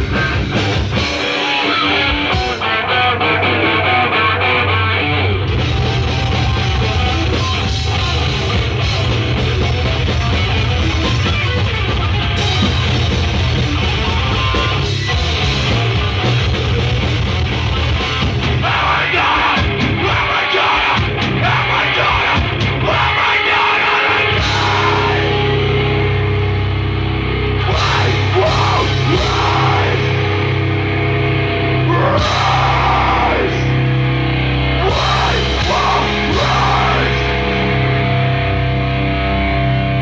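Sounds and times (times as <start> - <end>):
live heavy rock band: 0.0 - 40.0
shouted vocals: 5.5 - 8.6, 18.5 - 25.6, 27.6 - 30.5, 31.8 - 33.9, 34.7 - 37.8.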